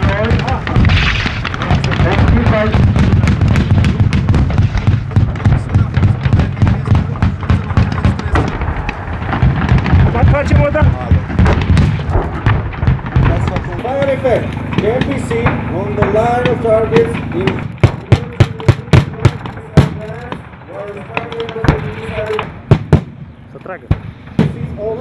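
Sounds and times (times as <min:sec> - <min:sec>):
gunfire crackle: 0:00.0 - 0:23.2
deep rumble: 0:00.0 - 0:24.9
explosions: 0:00.0 - 0:25.0.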